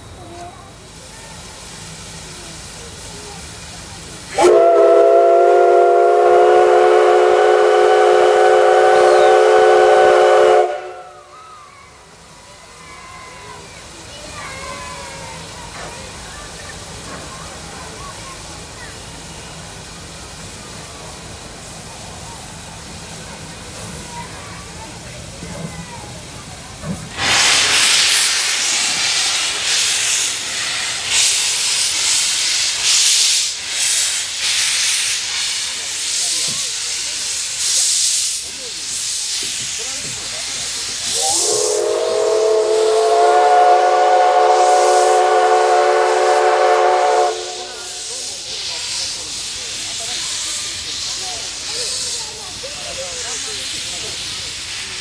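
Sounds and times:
steam hissing bursts: 0.0 - 55.0
steam whistle blast: 4.4 - 11.2, 41.1 - 48.1.

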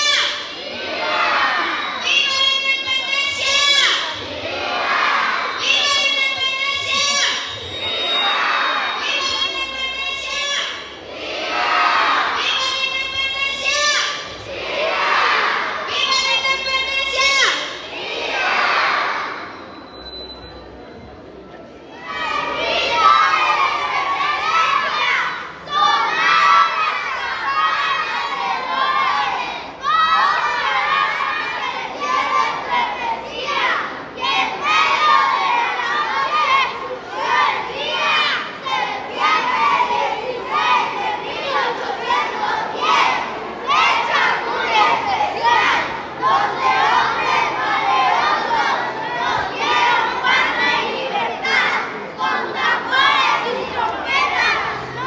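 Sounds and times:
children shouting together: 0.0 - 19.6, 21.9 - 55.0.

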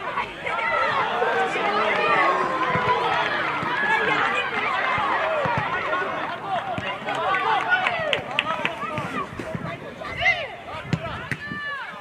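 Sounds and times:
long drawn-out shout: 0.0 - 9.2
people shouting and calling: 0.0 - 12.0.

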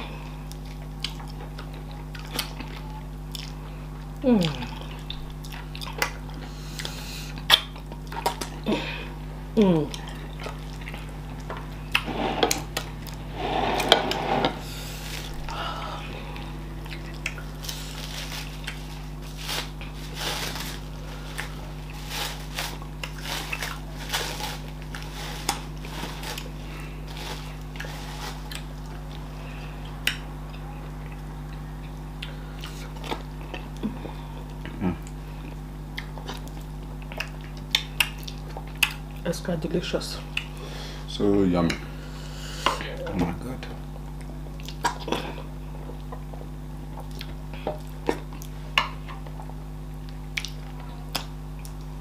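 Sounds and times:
chewing: 0.4 - 8.6, 9.8 - 15.6, 16.2 - 39.2, 40.3 - 40.6, 44.0 - 51.9.

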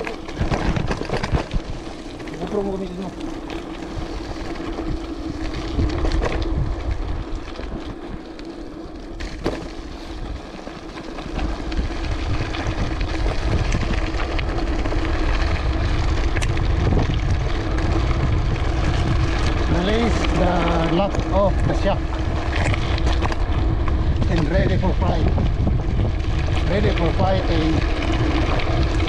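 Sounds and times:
bike tyres rolling on gravel: 0.0 - 29.0
wind buffeting microphone: 0.0 - 29.0.

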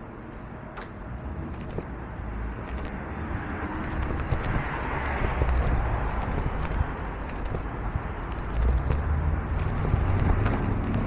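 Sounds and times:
city traffic noise: 0.0 - 11.0
wind rumbling on microphone: 1.1 - 11.0.

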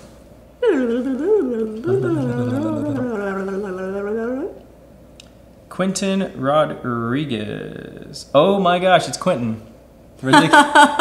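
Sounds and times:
lower voice humming: 0.6 - 4.6
voices humming wordlessly: 0.6 - 4.7.

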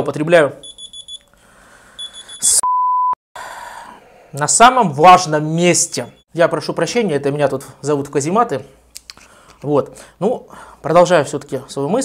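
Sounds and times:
censor bleep: 0.6 - 1.2, 2.0 - 3.2
mobile phone ringing: 0.6 - 1.3, 2.0 - 2.7.

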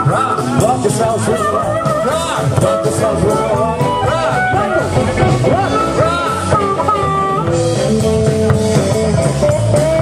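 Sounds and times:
blues band playing: 0.0 - 10.0
guitar with bending notes: 0.0 - 10.0
steady bass: 0.0 - 10.0.

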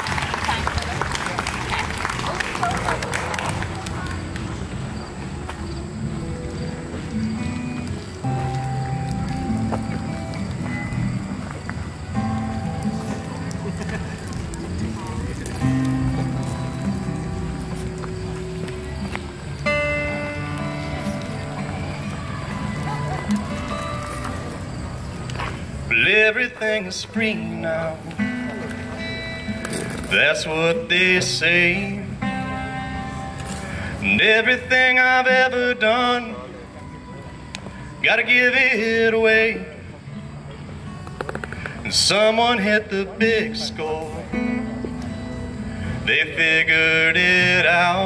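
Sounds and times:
applause: 0.0 - 4.6
people talking: 0.0 - 5.2, 12.9 - 19.4, 20.1 - 29.0, 41.4 - 45.1
acoustic guitar chords: 0.0 - 48.0.

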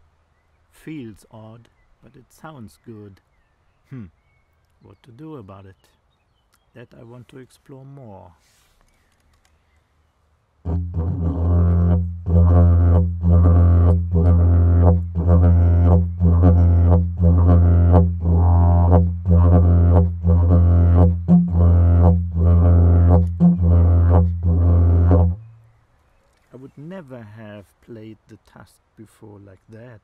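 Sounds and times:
didgeridoo drone: 10.7 - 25.5.

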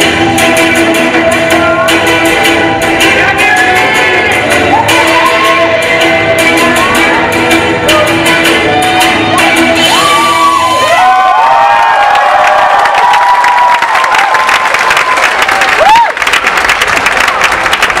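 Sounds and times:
dance music: 0.0 - 16.1
audience cheering and whooping: 4.6 - 5.8, 8.7 - 18.0
audience applause: 10.8 - 18.0.

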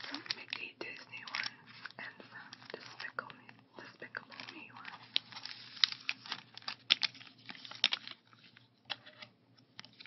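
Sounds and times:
person whispering: 0.0 - 5.0
plastic bag crinkling: 0.0 - 10.0.

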